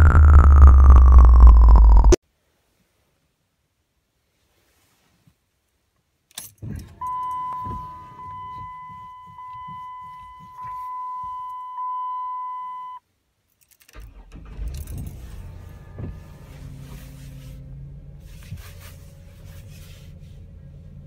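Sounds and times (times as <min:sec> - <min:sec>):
car engine turning over: 0:00.0 - 0:02.2, 0:13.9 - 0:21.0.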